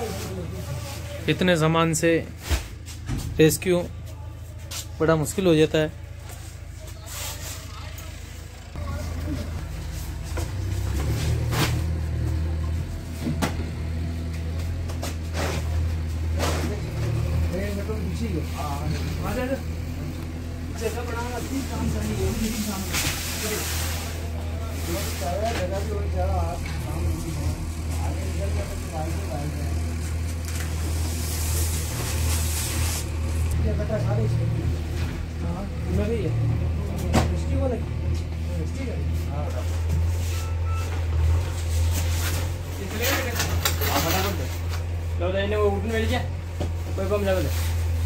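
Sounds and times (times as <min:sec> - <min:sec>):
vehicle engine humming: 0:00.0 - 0:48.0
faint voices talking: 0:03.8 - 0:09.9.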